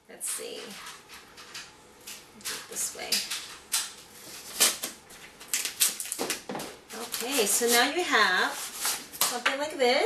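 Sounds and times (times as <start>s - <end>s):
masking tape ripping and crinkling: 2.4s - 9.4s.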